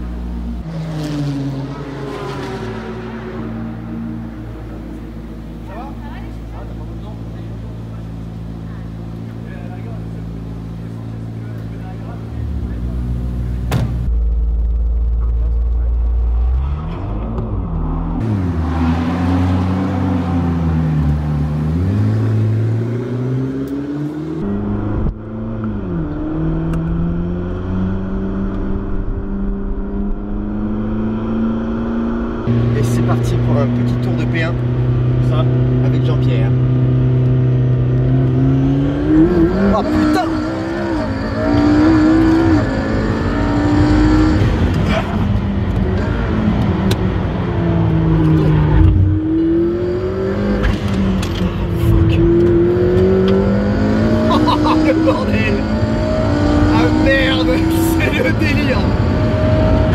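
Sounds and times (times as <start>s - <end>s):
car engine idling and revving: 0.0s - 59.9s.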